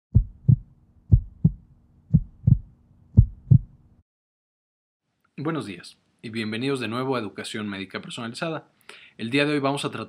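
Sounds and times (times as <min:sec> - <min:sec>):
heartbeat thumps: 0:00.1 - 0:03.8.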